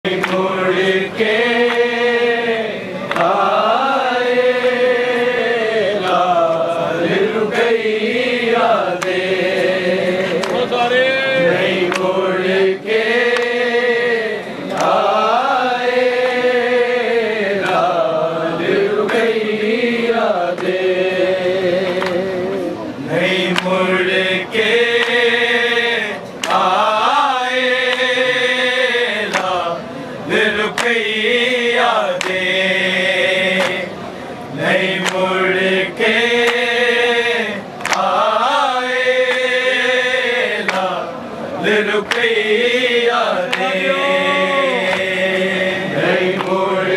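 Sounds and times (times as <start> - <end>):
men chanting in chorus: 0.0 - 46.9
hand slaps: 11.8 - 12.1, 26.4 - 26.7, 29.3 - 29.6, 30.7 - 31.0, 35.0 - 35.3, 37.8 - 38.1, 40.6 - 40.9, 42.0 - 42.3, 43.5 - 43.8.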